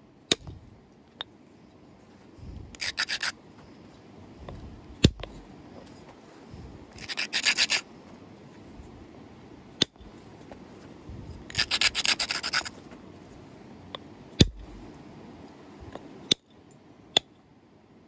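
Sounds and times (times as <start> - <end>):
stone edge scraping: 2.7 - 3.4, 6.9 - 7.9, 11.3 - 12.8.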